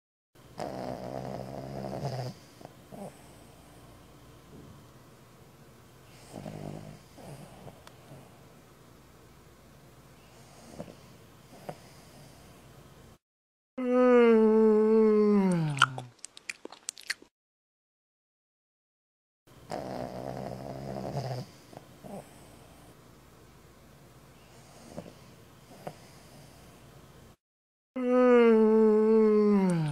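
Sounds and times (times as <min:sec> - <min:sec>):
pig snoring: 0:00.5 - 0:03.8, 0:06.1 - 0:08.3, 0:10.3 - 0:12.5, 0:19.6 - 0:23.0, 0:24.5 - 0:26.7.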